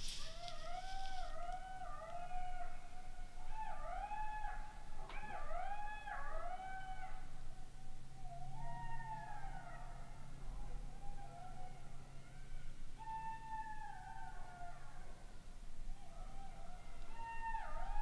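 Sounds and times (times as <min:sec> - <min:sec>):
jackals howling and yipping: 0:00.0 - 0:18.0.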